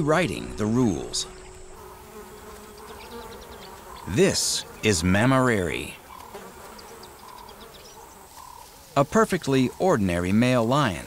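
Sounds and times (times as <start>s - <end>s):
flies and insects buzzing: 0.0s - 11.0s.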